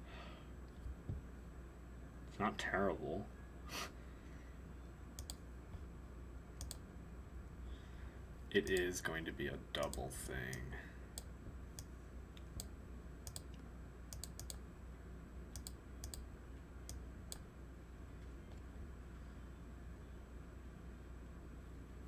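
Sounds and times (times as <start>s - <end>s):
low steady hum: 0.0s - 22.0s
computer mouse clicking: 5.2s - 5.4s, 6.6s - 6.8s, 11.2s - 14.6s, 15.5s - 16.2s.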